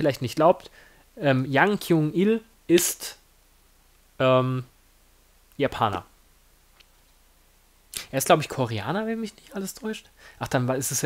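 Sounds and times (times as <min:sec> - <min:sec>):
man speaking: 0:00.0 - 0:03.2, 0:04.2 - 0:04.7, 0:05.6 - 0:06.1, 0:08.0 - 0:11.0.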